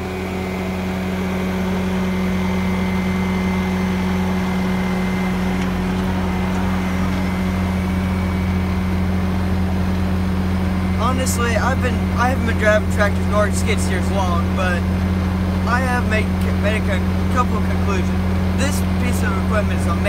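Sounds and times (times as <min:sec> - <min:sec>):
diesel engine running steadily: 0:00.0 - 0:20.0.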